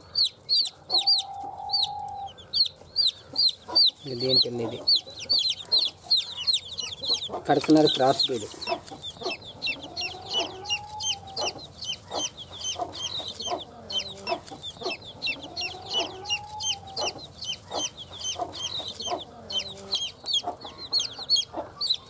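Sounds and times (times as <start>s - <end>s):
chicks peeping: 0.0s - 22.0s
hen clucking: 0.0s - 22.0s.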